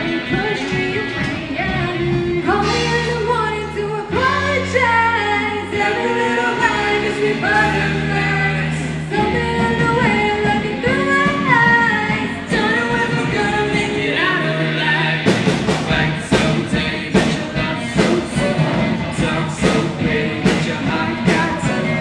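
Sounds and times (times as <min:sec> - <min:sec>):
live pop-rock band: 0:00.0 - 0:22.0
person singing: 0:00.0 - 0:22.0.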